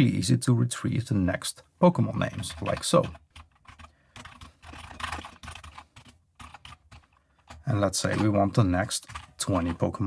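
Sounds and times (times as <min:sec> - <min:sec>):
computer keyboard typing: 0:02.2 - 0:10.0.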